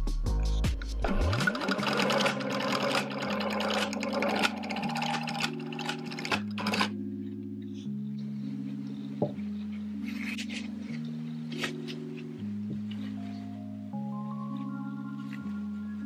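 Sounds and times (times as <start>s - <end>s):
background music with held chords: 0.0s - 16.0s
sewing machine stitching: 1.0s - 6.9s.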